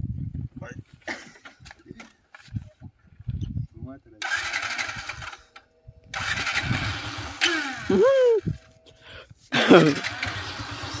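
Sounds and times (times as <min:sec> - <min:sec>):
motorcycle engine revving: 0:04.2 - 0:05.5, 0:06.1 - 0:08.7, 0:09.6 - 0:11.0.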